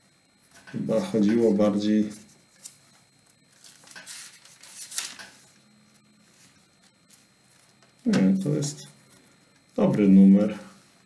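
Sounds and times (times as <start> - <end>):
paper rustling: 1.2 - 5.6, 6.2 - 8.0.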